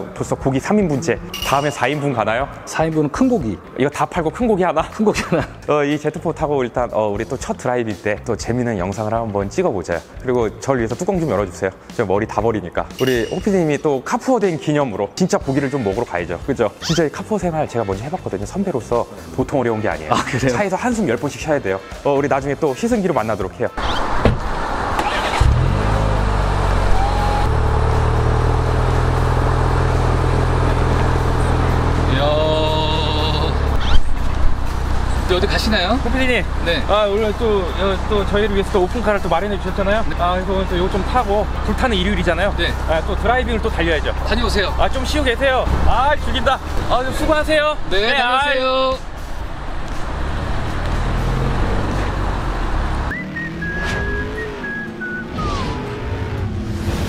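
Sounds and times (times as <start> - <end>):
road noise: 16.8 - 57.0
car engine idling: 24.5 - 47.7
music sting with whistle note: 53.1 - 56.0.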